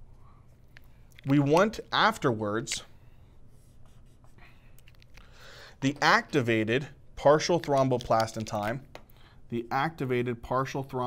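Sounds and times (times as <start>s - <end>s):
marker drawing on whiteboard: 3.5s - 4.4s.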